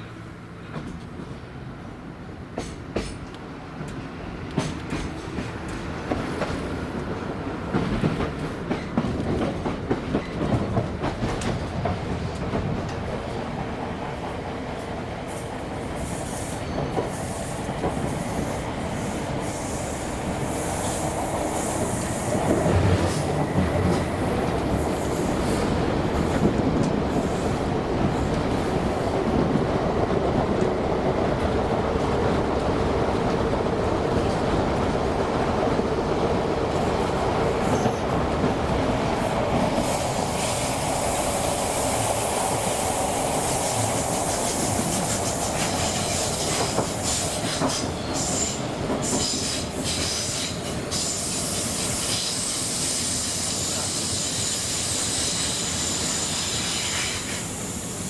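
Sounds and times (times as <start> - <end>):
train running rumble: 2.4 - 57.9.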